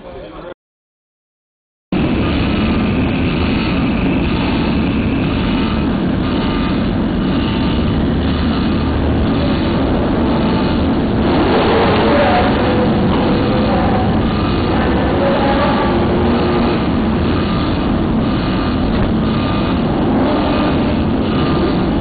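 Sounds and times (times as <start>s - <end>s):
dense rushing noise: 1.9s - 22.0s
loud engine drone: 1.9s - 22.0s.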